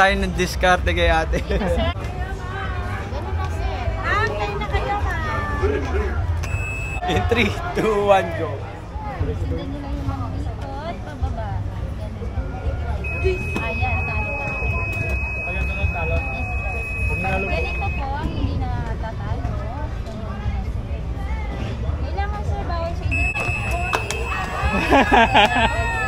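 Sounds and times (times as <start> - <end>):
electronic buzzer high tone: 6.5 - 7.1, 13.0 - 18.1, 23.1 - 26.0.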